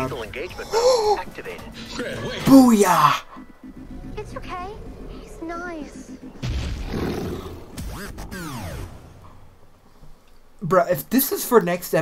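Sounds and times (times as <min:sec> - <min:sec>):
soundtrack music: 0:00.0 - 0:09.5
monster roar: 0:06.4 - 0:07.8.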